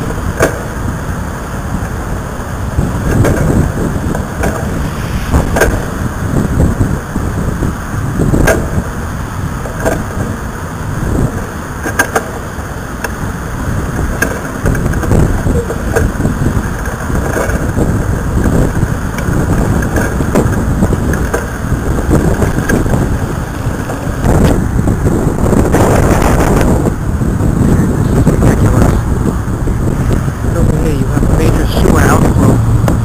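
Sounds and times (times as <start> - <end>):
gusty wind buffeting microphone: 0.0 - 33.0.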